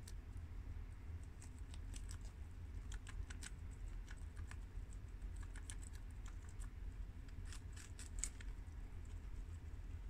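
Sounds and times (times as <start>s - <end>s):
guinea pigs munching lettuce: 0.0s - 10.0s.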